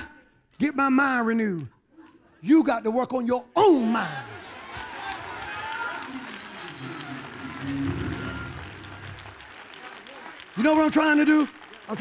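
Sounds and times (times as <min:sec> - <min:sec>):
congregation clapping: 0:04.2 - 0:12.0
church music with sustained chords: 0:06.8 - 0:09.7.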